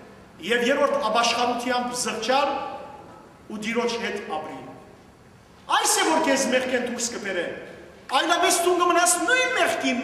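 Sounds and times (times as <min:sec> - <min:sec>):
man speaking into a microphone: 0:00.4 - 0:05.0, 0:05.6 - 0:10.0.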